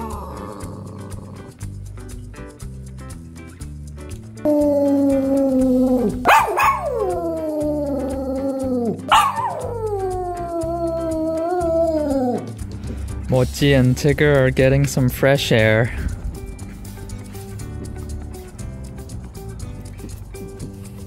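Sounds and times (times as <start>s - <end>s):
background music: 0.0s - 21.0s
small dog howling: 4.5s - 12.5s.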